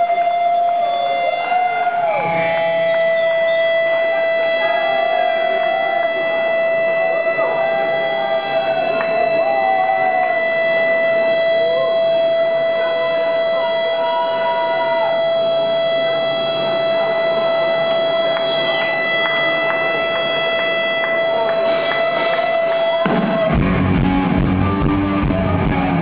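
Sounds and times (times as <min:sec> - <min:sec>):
electric guitar feedback note: 0:00.0 - 0:26.0.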